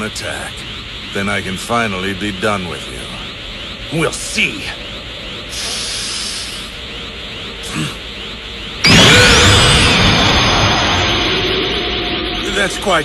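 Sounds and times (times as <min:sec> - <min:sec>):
energy aura hiss and rush: 0:00.0 - 0:13.0.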